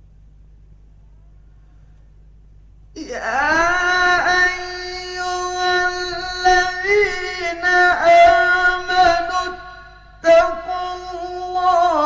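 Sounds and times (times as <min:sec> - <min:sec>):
man chanting melodically: 0:03.0 - 0:12.0.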